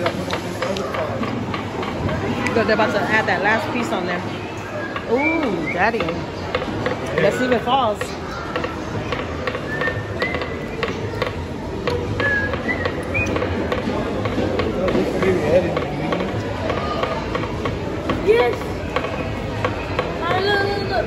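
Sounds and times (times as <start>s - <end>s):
distant children's voices: 16.3s - 21.0s.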